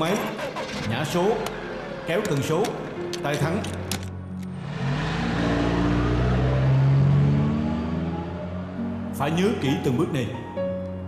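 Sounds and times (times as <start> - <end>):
van engine revving: 4.4 - 9.1.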